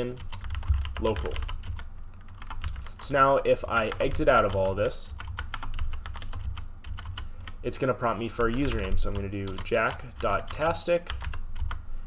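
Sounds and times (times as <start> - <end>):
keyboard typing: 0.0 - 3.0, 3.6 - 11.8
low steady hum: 0.0 - 12.0.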